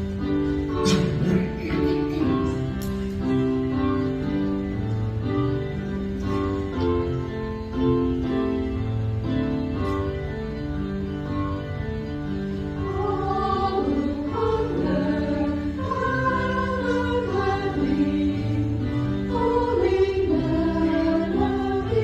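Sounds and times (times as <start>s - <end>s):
church choir singing: 12.6s - 22.0s.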